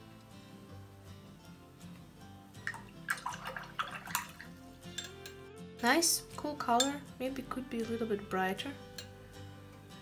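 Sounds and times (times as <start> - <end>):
soft guitar music: 0.0 - 10.0
water splashes and drips: 2.6 - 4.6
paintbrush rinsed in water: 2.7 - 4.7.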